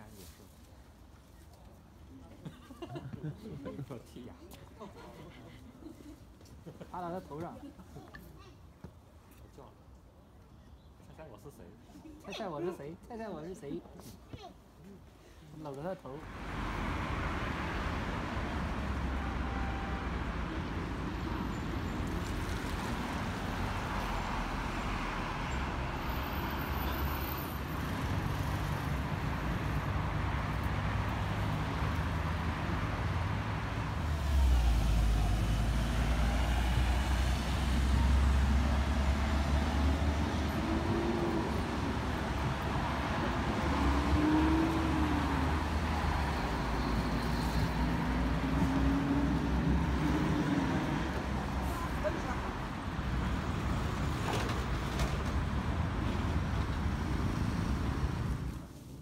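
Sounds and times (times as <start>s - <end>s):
passing vehicles rumble: 16.1s - 59.0s.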